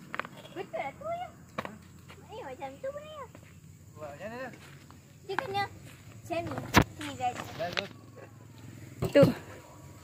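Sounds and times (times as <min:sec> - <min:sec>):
low outdoor background: 0:00.0 - 0:10.0.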